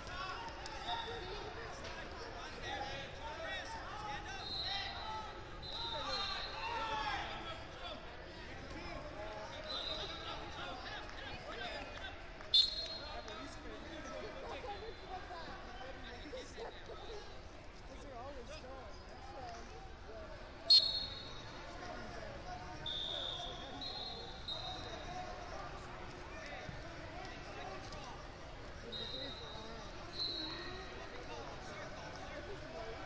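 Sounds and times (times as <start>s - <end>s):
murmur of voices: 0.0s - 33.0s
referee's whistle blown: 5.6s - 6.7s, 12.5s - 13.2s, 20.7s - 21.6s, 22.8s - 25.0s, 28.8s - 30.9s.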